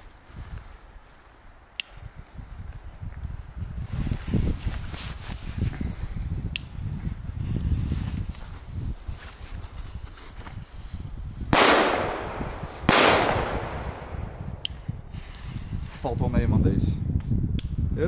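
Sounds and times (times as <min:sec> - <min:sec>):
wind rumble on microphone: 0:00.0 - 0:18.0
firecracker bangs with echo: 0:11.5 - 0:14.6.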